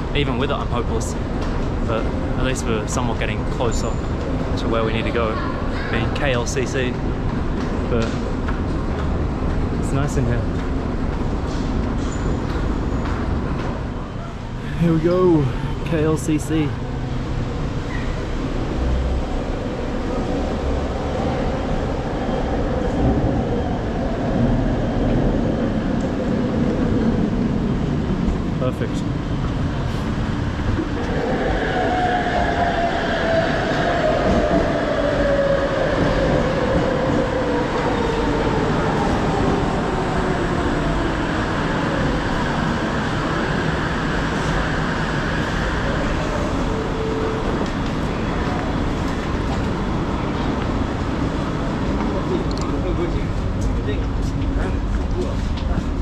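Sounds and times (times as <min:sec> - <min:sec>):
station background noise: 0:00.0 - 0:56.0.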